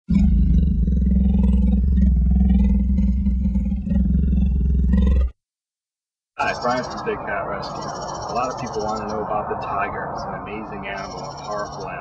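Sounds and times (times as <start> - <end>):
big cat roaring: 0.1 - 5.3.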